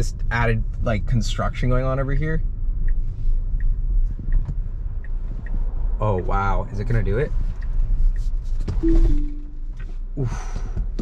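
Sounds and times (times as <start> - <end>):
road noise rumble: 0.0 - 11.0
two-note alert chime: 8.8 - 9.7.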